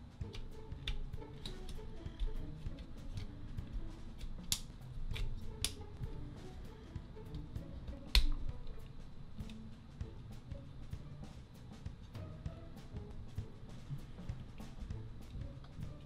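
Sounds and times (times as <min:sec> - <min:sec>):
background music: 0:00.0 - 0:16.0
plastic toy parts clicking: 0:04.1 - 0:05.8.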